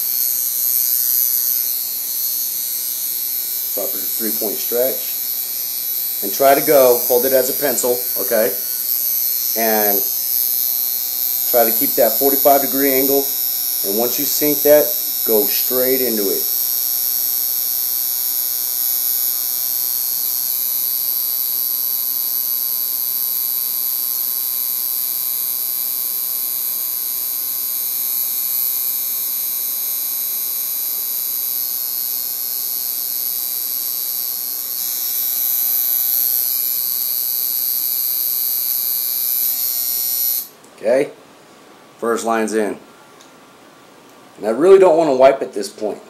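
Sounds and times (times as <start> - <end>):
tattoo machine buzzing: 0.0 - 40.7.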